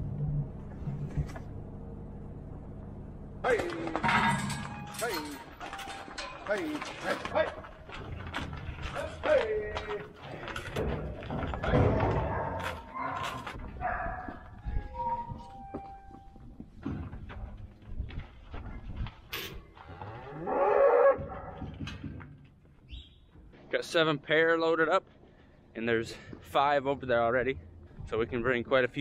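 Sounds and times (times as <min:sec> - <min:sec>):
knocks and clatters in steel pens: 0:03.4 - 0:15.8, 0:21.2 - 0:22.6
cattle mooing: 0:19.8 - 0:21.6.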